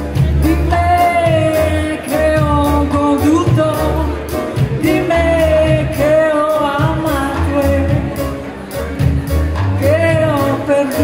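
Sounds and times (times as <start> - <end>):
double bass: 0.0 - 11.0
guitar: 0.0 - 11.0
woman singing: 0.2 - 8.4, 9.8 - 11.0.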